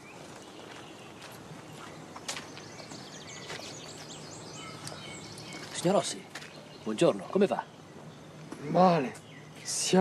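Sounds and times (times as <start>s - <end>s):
small bird chirping: 0.0s - 10.0s
steady outdoor hiss: 0.0s - 10.0s
slow footsteps: 0.1s - 4.2s, 4.8s - 6.6s.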